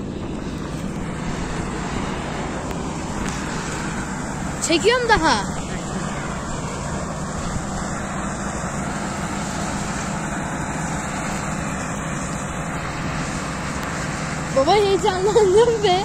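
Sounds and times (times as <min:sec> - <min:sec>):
combine harvester engine drone: 0:00.0 - 0:16.0.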